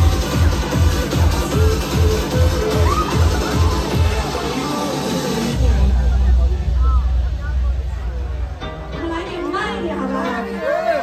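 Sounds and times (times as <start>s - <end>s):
sub-bass drone: 0.0s - 10.0s
faint voices: 0.0s - 11.0s.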